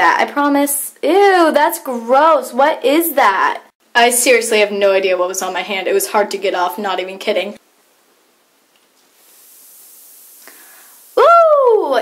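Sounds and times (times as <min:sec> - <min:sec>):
bath bomb fizzing: 0:08.9 - 0:12.0.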